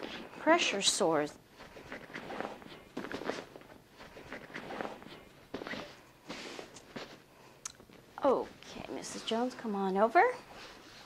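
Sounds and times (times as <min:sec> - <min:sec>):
bed sheet rustling: 0:00.0 - 0:07.3.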